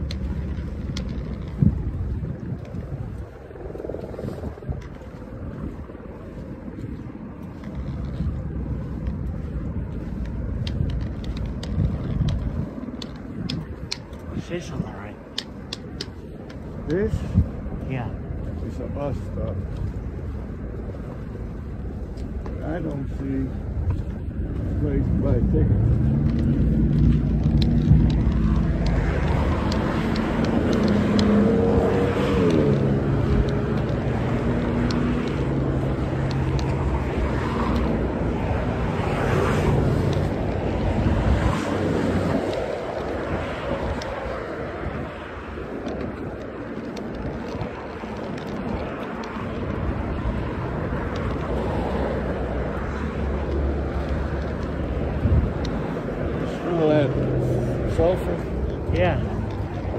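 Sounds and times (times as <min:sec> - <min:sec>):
street traffic driving past: 0:00.0 - 0:59.9
vehicle passing with pitch sliding: 0:24.2 - 0:59.9.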